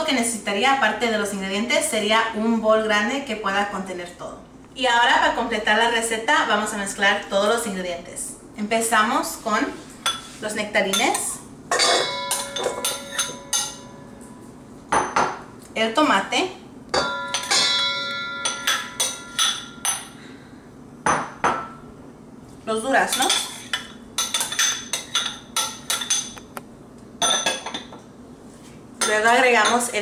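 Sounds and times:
metal spoon clinking on bowl: 10.9s - 14.1s, 17.0s - 20.2s, 23.1s - 26.5s, 27.2s - 28.0s, 29.0s - 30.0s
ceramic bowl clattering down: 11.7s - 14.0s.

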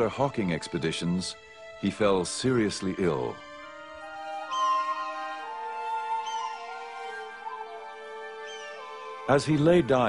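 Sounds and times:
slow background music: 0.0s - 10.0s
hawk cry: 4.5s - 9.4s.

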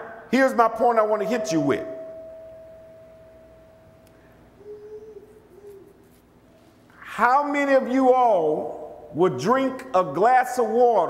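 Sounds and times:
pa system ringing tone: 0.6s - 5.2s.

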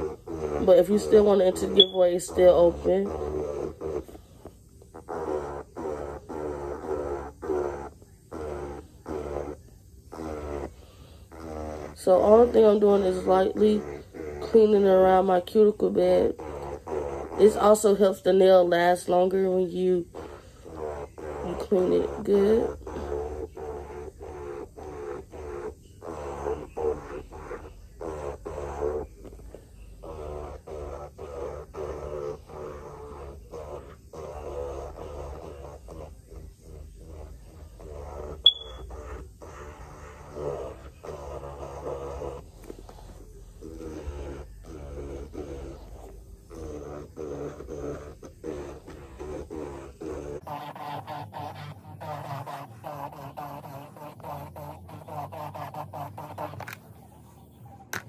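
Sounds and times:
electric nail drill running: 0.0s - 56.8s.

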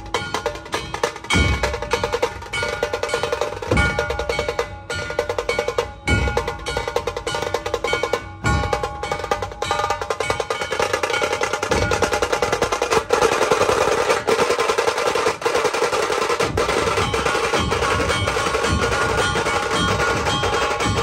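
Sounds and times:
deep drum beats: 0.0s - 21.0s
rattling drum roll: 0.0s - 21.0s.

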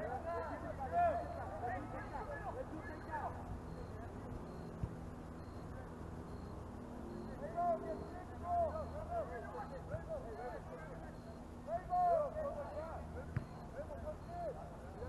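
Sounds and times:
distant shouts of players and spectators: 0.0s - 6.4s, 7.0s - 15.0s.

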